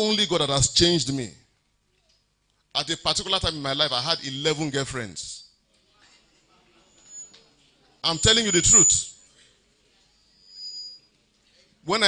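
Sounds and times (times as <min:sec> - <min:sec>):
man preaching over pa: 0:02.8 - 0:05.4, 0:08.0 - 0:09.1
thin high whistle: 0:06.9 - 0:07.4, 0:10.2 - 0:11.1.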